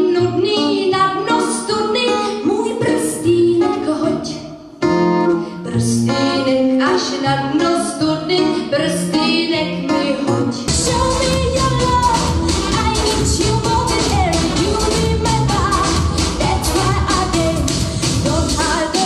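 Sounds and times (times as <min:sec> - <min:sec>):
instrumental backing: 0:00.0 - 0:19.0
woman singing pop song: 0:00.0 - 0:19.0.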